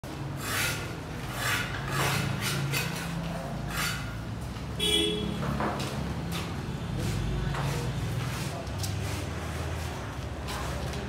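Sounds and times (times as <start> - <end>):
tool scraping concrete: 0.3 - 4.2.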